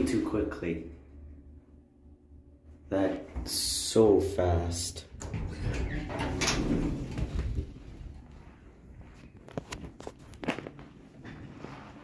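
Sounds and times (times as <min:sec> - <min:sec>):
footsteps on carpet: 0:07.2 - 0:12.0.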